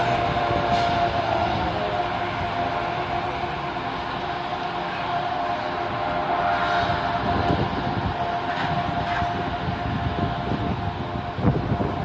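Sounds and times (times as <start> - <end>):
train running on tracks: 0.0 - 12.0.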